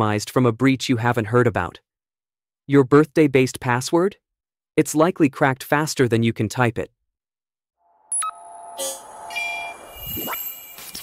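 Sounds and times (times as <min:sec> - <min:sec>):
high shimmering chime tones: 0:07.9 - 0:11.0.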